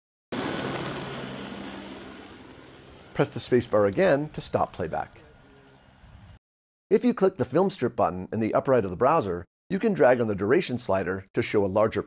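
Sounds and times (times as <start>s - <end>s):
helicopter flying away: 0.3s - 6.4s.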